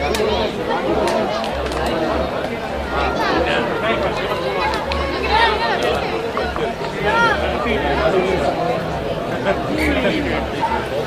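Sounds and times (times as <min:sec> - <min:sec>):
overlapping voices calling out: 0:00.0 - 0:11.0.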